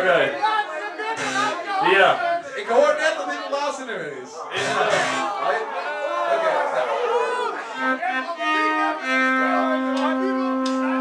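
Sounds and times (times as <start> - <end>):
live band held notes: 1.2 - 1.6, 4.6 - 5.4.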